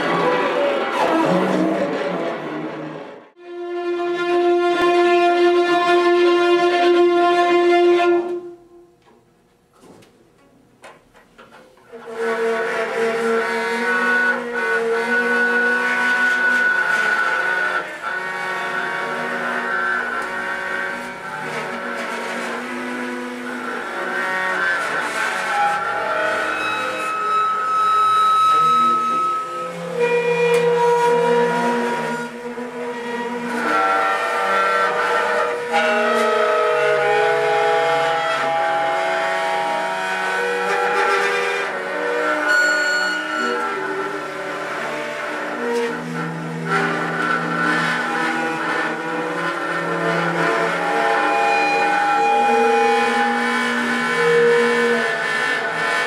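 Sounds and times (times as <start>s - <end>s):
violins and cello bowed notes: 0.0s - 9.1s, 11.4s - 56.0s.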